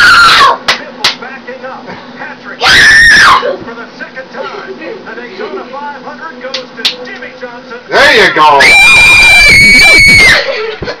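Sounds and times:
girl screaming: 0.0 - 0.6, 2.6 - 3.5, 8.6 - 10.6.

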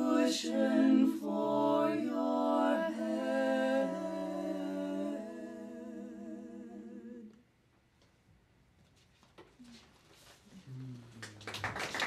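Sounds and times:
women singing a cappella harmony: 0.0 - 7.4.

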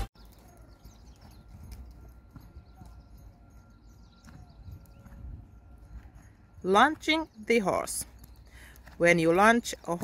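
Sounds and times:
horse hoofbeats on sand: 0.0 - 10.0.

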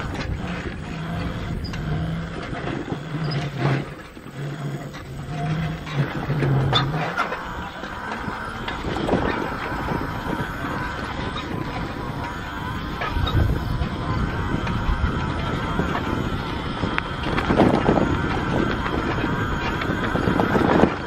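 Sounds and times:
electric motor hum: 0.0 - 21.0
tyre and frame noise: 0.0 - 21.0.

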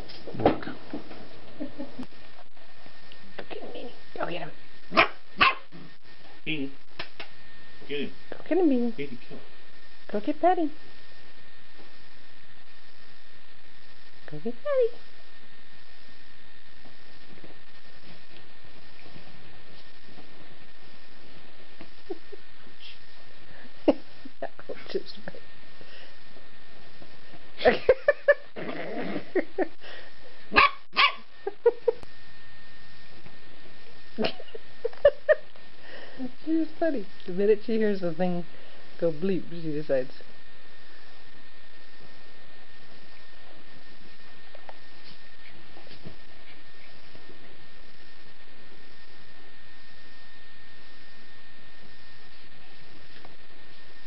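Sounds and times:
dog barking: 4.9 - 5.7, 30.5 - 31.3
dog growling: 28.5 - 29.5.

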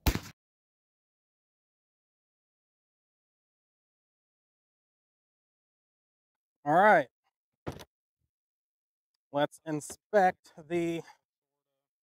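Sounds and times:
shotgun blast: 0.0 - 0.4.

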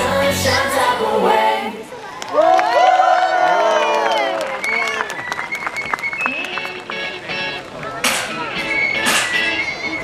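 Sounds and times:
music over outdoor loudspeakers: 0.0 - 1.8, 6.1 - 10.0
crowd clapping along: 2.1 - 9.2.

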